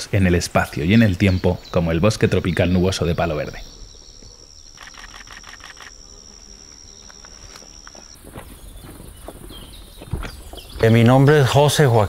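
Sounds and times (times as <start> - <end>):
quiet forest background: 0.0 - 12.0
insect buzzing: 3.0 - 10.4.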